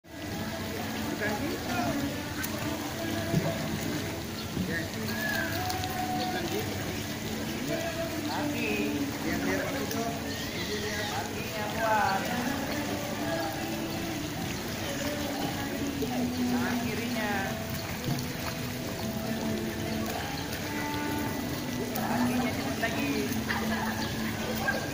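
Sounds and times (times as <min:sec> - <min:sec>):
faint voices: 0:00.1 - 0:24.9
water splashing from swimming: 0:00.1 - 0:24.9.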